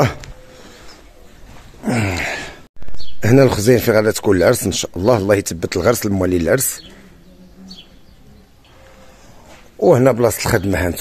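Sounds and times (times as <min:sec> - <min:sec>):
man talking: 0:03.2 - 0:07.0, 0:09.8 - 0:11.0.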